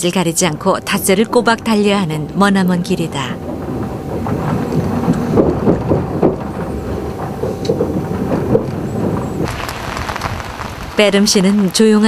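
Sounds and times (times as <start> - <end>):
faint steady whine: 0.0 - 12.0
train rumble: 0.0 - 12.0
knocks and rattles: 0.1 - 12.0.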